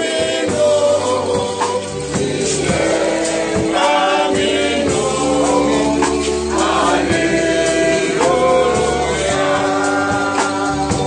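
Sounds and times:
group singing gospel song: 0.0s - 11.0s.

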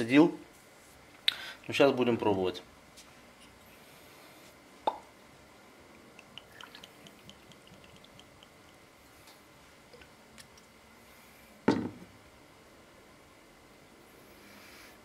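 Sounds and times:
liquid trickling into glass: 6.0s - 8.8s
bottle set down on countertop: 11.7s - 12.0s.

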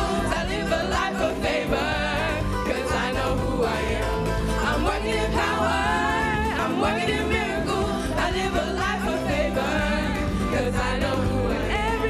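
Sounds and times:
instrumental backing: 0.0s - 12.0s
voices singing worship song: 0.0s - 12.0s.

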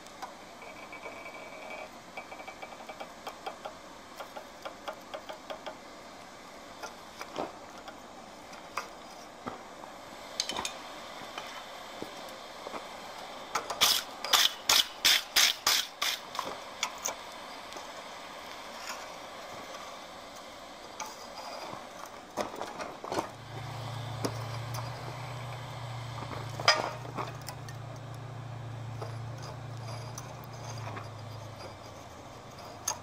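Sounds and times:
low steady hum: 5.7s - 33.0s.

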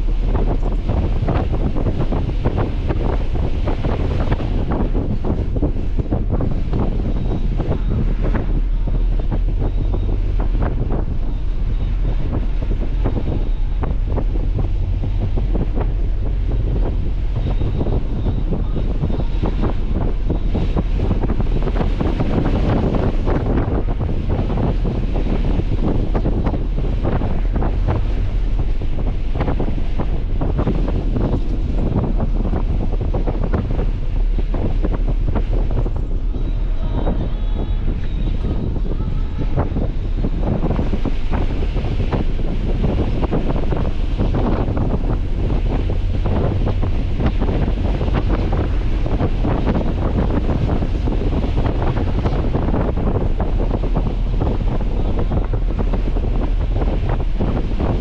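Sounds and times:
road and engine rumble: 0.0s - 58.0s
wind buffeting microphone: 0.0s - 58.0s.

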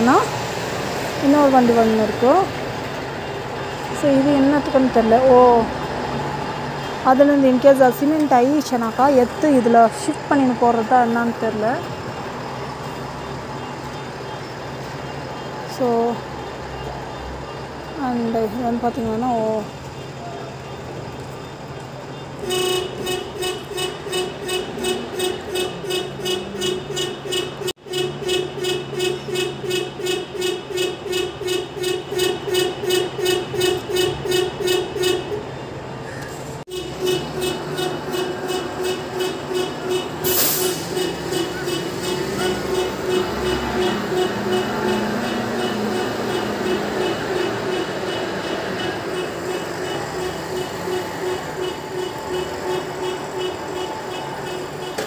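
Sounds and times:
diesel engine hum: 0.0s - 55.0s
truck reverse warning beeps: 36.7s - 55.0s.

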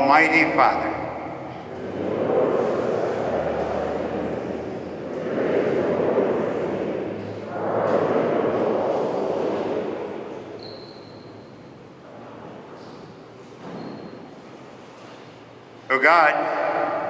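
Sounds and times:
congregation reciting in echoing church: 0.0s - 17.0s.

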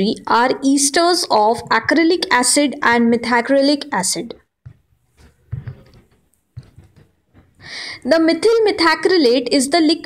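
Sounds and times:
person speaking: 0.0s - 10.0s
intake of breath: 7.6s - 8.0s.

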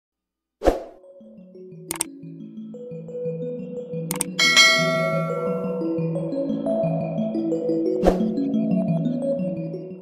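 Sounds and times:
background music: 0.6s - 10.0s
quick clicks: 4.1s - 4.4s
notification bell chime: 4.4s - 5.9s.

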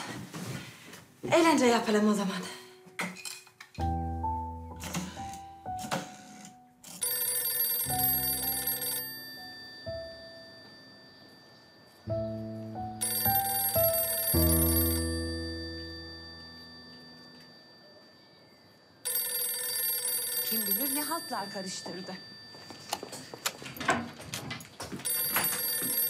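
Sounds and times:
telephone bell ringing: 6.3s - 12.3s, 13.0s - 23.4s, 25.0s - 26.0s.

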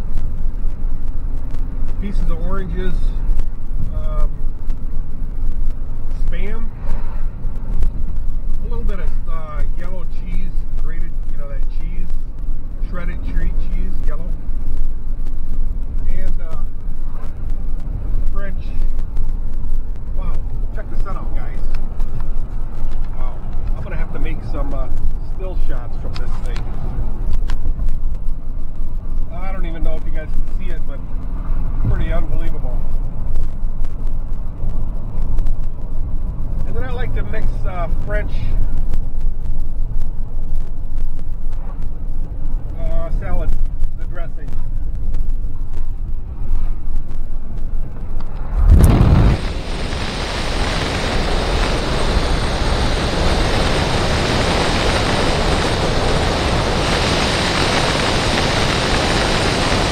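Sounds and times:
car engine and road rumble: 0.0s - 59.9s
man talking: 2.0s - 3.3s, 3.9s - 4.4s, 6.2s - 6.7s, 8.6s - 12.2s, 12.8s - 14.4s, 16.0s - 16.7s, 18.3s - 18.9s, 20.1s - 21.7s, 23.1s - 26.7s, 29.3s - 31.0s, 31.8s - 32.9s, 36.7s - 38.6s, 42.8s - 44.6s.

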